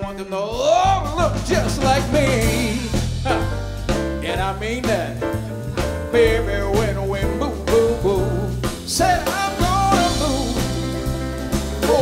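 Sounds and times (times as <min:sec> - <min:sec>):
jazz band playing: 0:00.0 - 0:12.0
man singing: 0:00.0 - 0:12.0
drum hits: 0:00.6 - 0:12.0.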